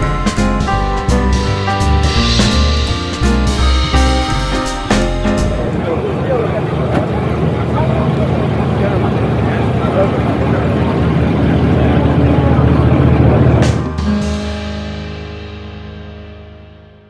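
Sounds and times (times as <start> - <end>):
background music: 0.0 - 6.0, 12.8 - 17.0
crowd chatter: 1.7 - 14.1.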